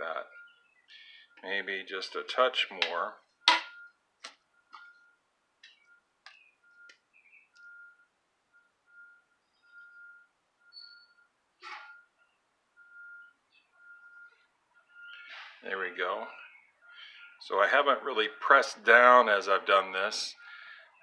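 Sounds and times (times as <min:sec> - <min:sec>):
faint high whistle-like tone: 0:09.0 - 0:12.1.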